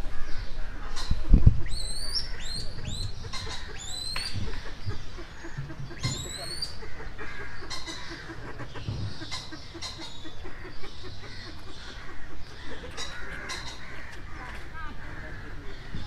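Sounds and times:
bird squeaky calls: 1.0s - 14.0s.

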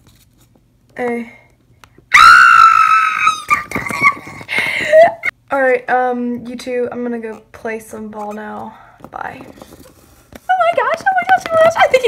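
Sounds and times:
girl squealing: 2.1s - 5.3s.

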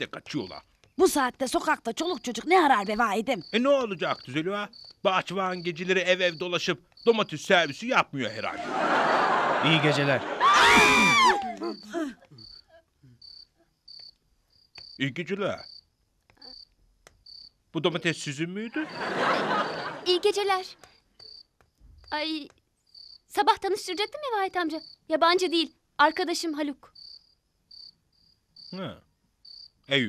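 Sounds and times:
crickets chirping: 0.0s - 30.0s.

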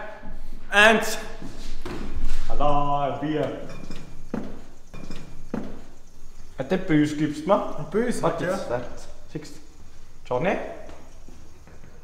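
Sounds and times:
dull thuds: 3.7s - 6.4s.

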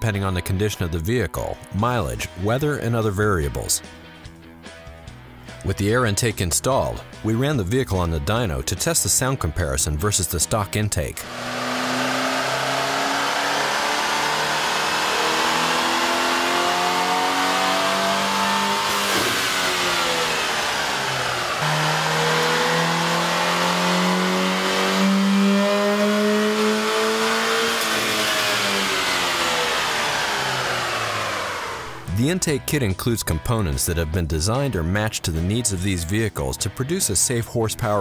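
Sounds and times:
car engine revving under load: 11.2s - 32.2s.

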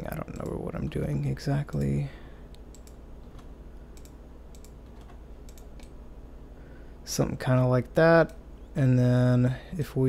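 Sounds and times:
faint low hum: 0.0s - 10.0s
computer keyboard keystrokes: 2.6s - 6.0s.

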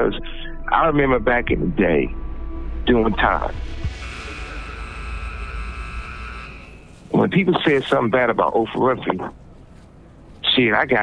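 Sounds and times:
phone line hum and hiss: 3.8s - 9.9s.

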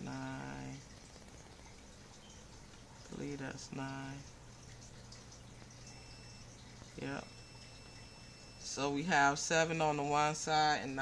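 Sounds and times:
faint low hum: 0.0s - 11.0s
multimeter beeper tone: 5.6s - 11.0s.

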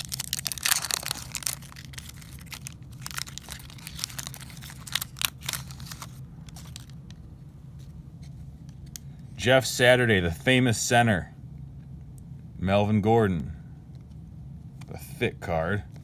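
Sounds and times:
foil wrapper crinkling and tearing: 0.0s - 7.2s.

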